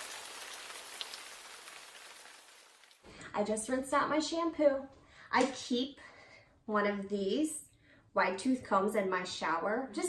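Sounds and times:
shower water spraying: 0:00.0 - 0:03.0.

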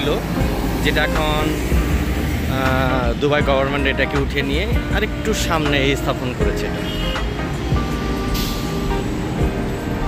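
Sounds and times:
truck engine running: 0:07.2 - 0:10.0.

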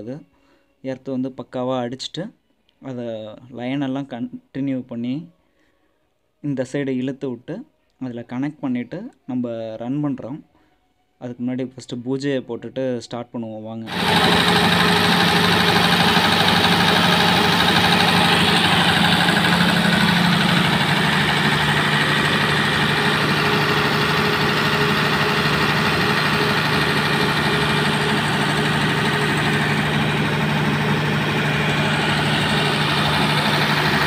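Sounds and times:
diesel generator running: 0:13.9 - 0:34.0.

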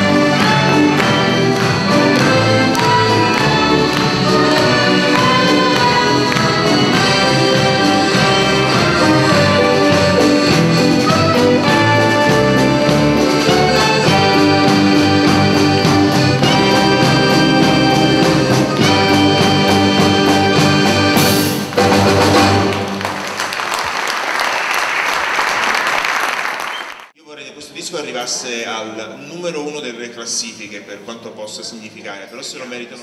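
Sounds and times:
live band playing lively tune: 0:00.0 - 0:23.4
audience applauding: 0:00.0 - 0:27.1.

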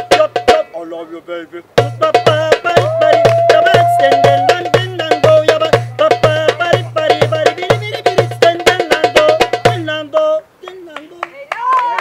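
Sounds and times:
hand drumming: 0:01.8 - 0:09.9
voices: 0:02.8 - 0:04.8
voice holding a note: 0:02.8 - 0:04.9
hand claps: 0:03.2 - 0:03.5, 0:10.6 - 0:12.0.

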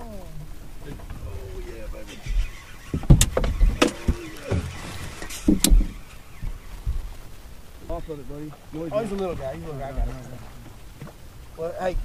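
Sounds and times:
knocks and thumps on boat deck: 0:02.9 - 0:07.2.

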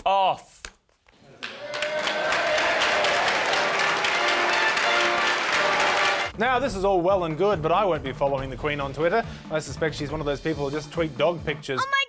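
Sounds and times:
audience applause: 0:01.3 - 0:06.4
music: 0:02.4 - 0:12.0.

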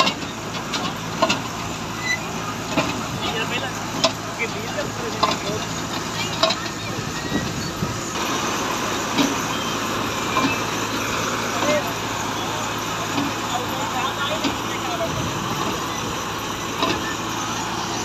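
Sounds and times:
machine engine humming: 0:00.0 - 0:18.0.

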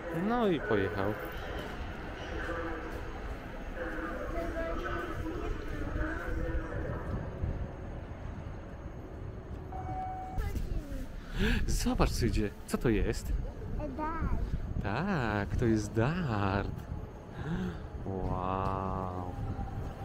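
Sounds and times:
faint voices: 0:00.0 - 0:09.1
wind buffeting microphone: 0:01.3 - 0:20.0
short steady tone: 0:09.7 - 0:10.6.

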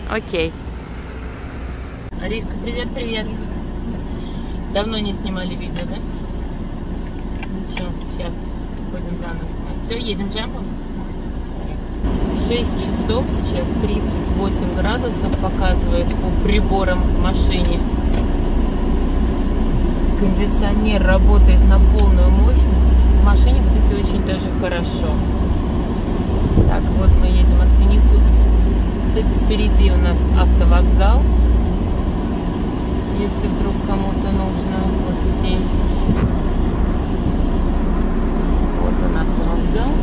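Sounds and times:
air conditioning blowing: 0:00.0 - 0:40.0
engine and road rumble: 0:00.0 - 0:40.0.

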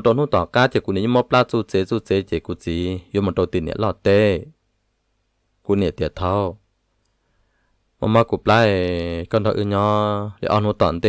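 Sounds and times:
person narrating: 0:00.0 - 0:04.6, 0:05.6 - 0:06.6, 0:08.0 - 0:11.0.

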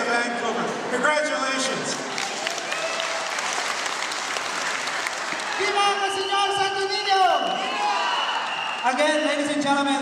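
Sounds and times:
audience applauding: 0:02.1 - 0:06.4, 0:07.7 - 0:09.6.

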